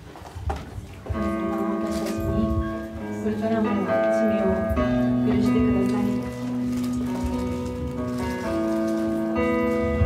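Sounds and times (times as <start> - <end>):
electric guitars: 0.0 - 10.0
keyboard chords: 1.0 - 10.0
low bass line: 1.1 - 8.2.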